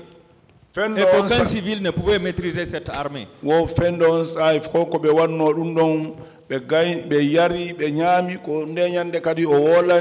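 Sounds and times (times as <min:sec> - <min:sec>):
man speaking: 0:00.7 - 0:10.0.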